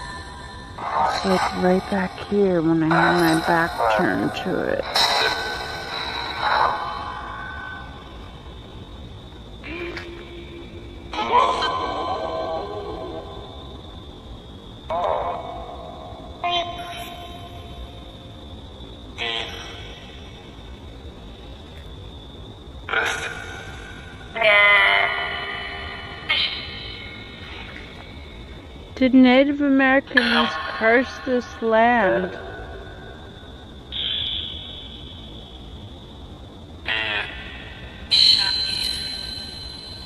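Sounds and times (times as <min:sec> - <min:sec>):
radio hiss and high whine: 0:00.0 - 0:16.2, 0:16.8 - 0:40.0
clipped broadcast voices: 0:00.8 - 0:05.3, 0:29.0 - 0:32.4.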